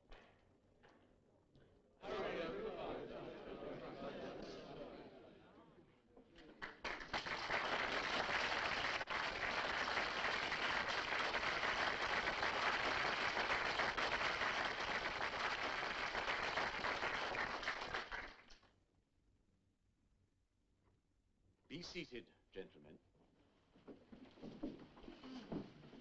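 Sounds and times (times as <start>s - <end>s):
audience applauding: 6.6s - 18.6s.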